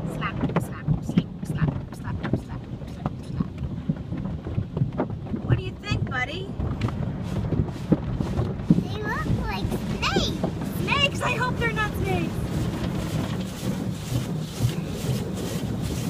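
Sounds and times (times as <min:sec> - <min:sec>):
car wash brushes: 0:00.0 - 0:16.0
car wash water rushing: 0:00.0 - 0:16.0.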